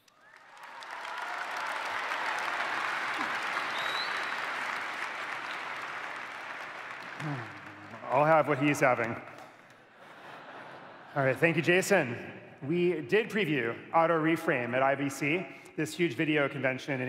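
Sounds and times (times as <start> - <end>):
audience applauding: 0.0 - 9.8
man speaking: 7.2 - 9.3, 11.2 - 17.0.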